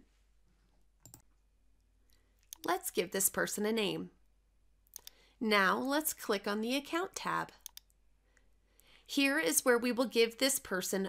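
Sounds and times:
computer mouse click: 1.0 - 1.3, 2.4 - 2.7, 4.9 - 5.2, 7.6 - 8.0.

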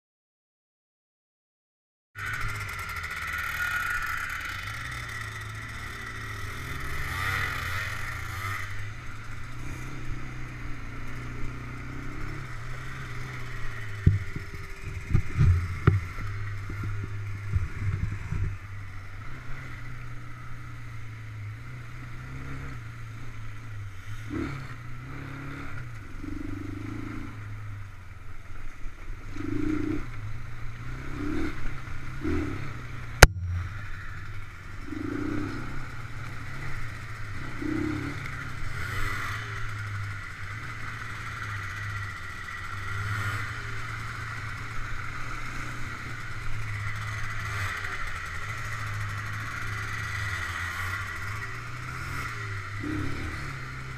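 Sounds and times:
quad engine running: 2.2 - 53.9
sharp knocks and rattles: 13.9 - 18.6.

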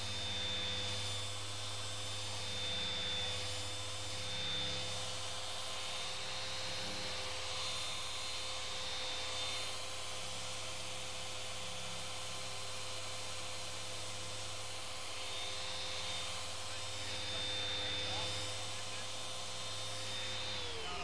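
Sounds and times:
car polishers whining: 0.0 - 21.0.

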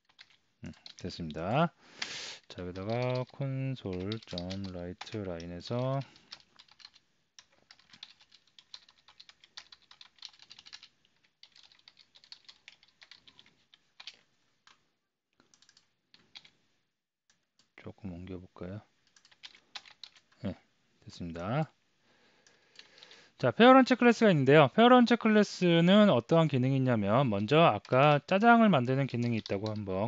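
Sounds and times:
computer keyboard typing: 0.0 - 14.8, 15.4 - 16.5, 19.0 - 20.4, 22.4 - 23.2, 27.4 - 30.0.

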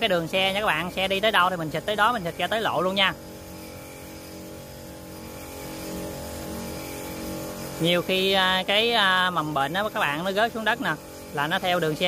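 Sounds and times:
sprayer pump humming: 0.0 - 12.0.

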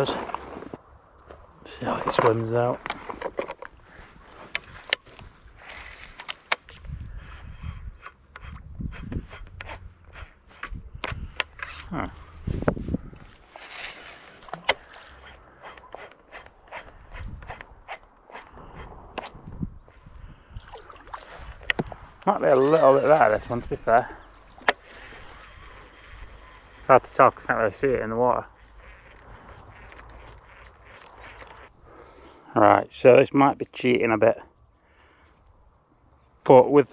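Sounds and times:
wind rumbling on microphone: 0.0 - 32.0.

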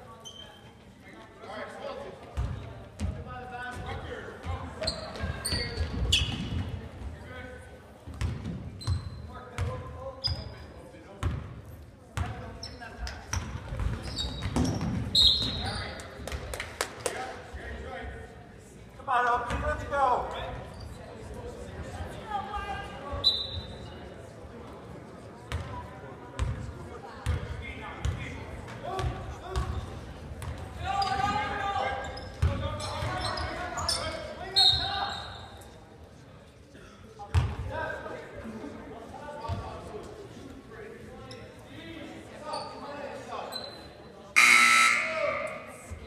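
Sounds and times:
scoreboard buzzer: 44.4 - 45.4
high whistle: 44.4 - 45.5.

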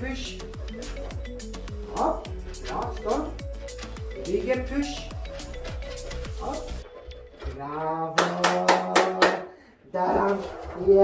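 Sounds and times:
person's wordless voice: 0.0 - 5.3
hands clapping: 8.2 - 9.5.

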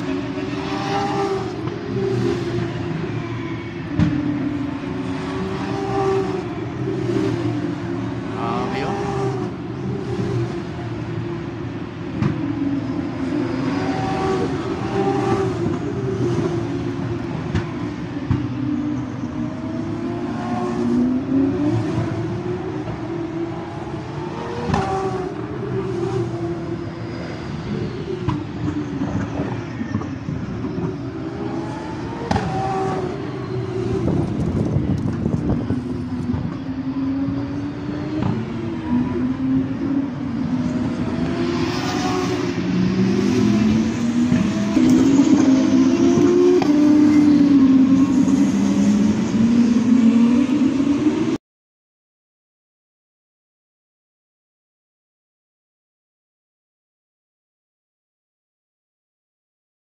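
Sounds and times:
racing car engines droning: 0.0 - 51.4.

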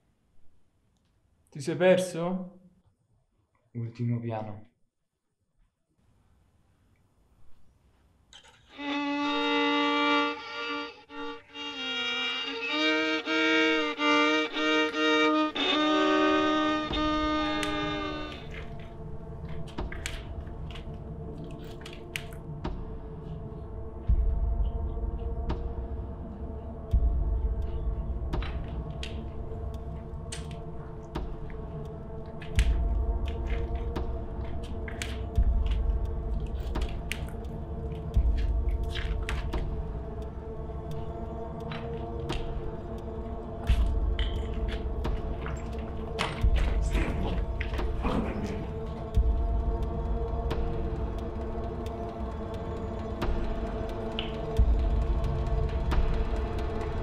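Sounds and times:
solo violin melody: 8.6 - 18.6.

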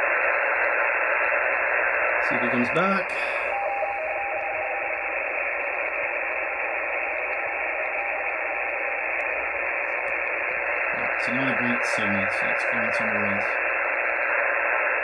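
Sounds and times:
shortwave receiver hiss: 0.0 - 15.0
faint two-tone teletype signal: 2.2 - 13.6.

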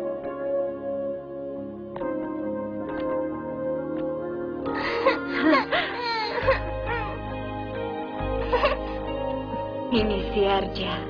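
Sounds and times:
background music: 0.0 - 11.0
girl crying and sobbing: 4.7 - 7.4, 8.2 - 9.7.

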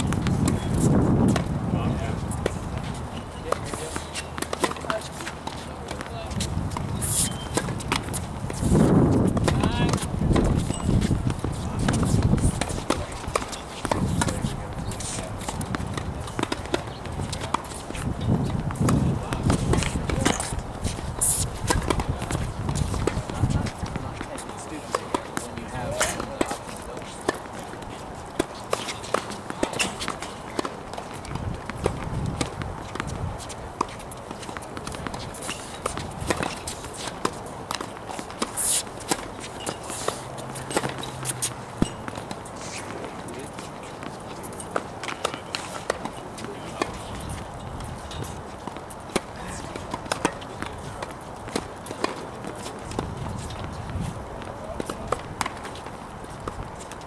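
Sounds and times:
tennis balls struck and bounced: 0.0 - 57.0.

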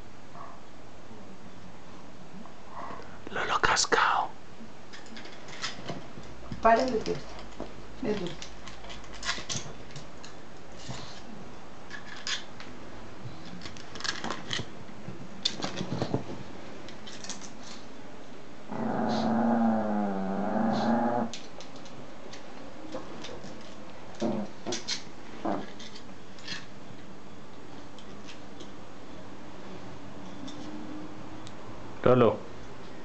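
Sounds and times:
dog growling: 18.7 - 21.4, 24.2 - 24.6, 25.4 - 25.8.

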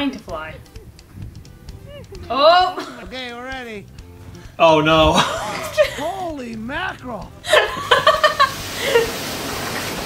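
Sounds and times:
burst of laughter: 7.5 - 9.1
heavy rain downpour: 7.9 - 10.0.

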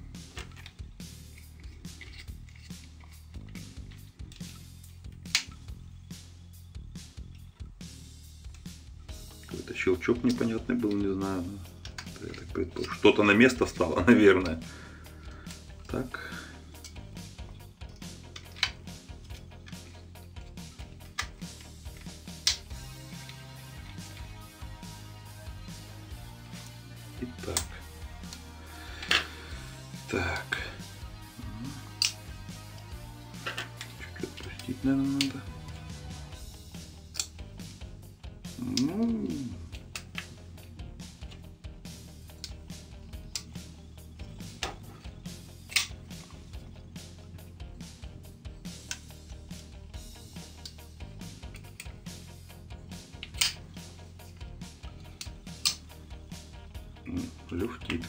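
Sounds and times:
background music with bass line: 0.0 - 58.0
knife and screwdriver clicks: 0.3 - 5.6, 31.8 - 32.8, 37.1 - 37.4, 45.7 - 46.1, 48.8 - 49.2, 51.4 - 52.0, 53.1 - 54.5, 55.1 - 55.9.

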